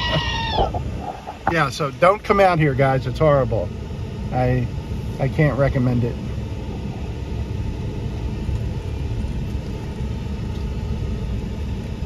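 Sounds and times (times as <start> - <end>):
air-conditioning fan: 0.0 - 12.0.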